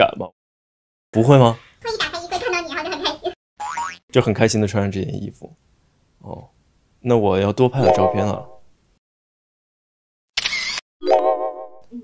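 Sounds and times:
person speaking: 7.1 - 8.6.

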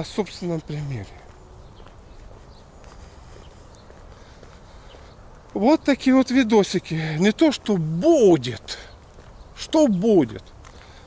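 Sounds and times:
footsteps on leaf litter: 0.0 - 5.8.

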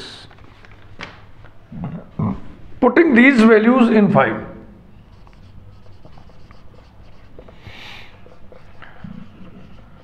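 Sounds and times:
marker writing on whiteboard: 5.1 - 10.0.

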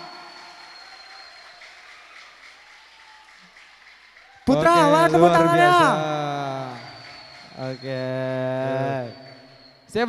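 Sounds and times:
faint audience applause: 0.0 - 9.7.

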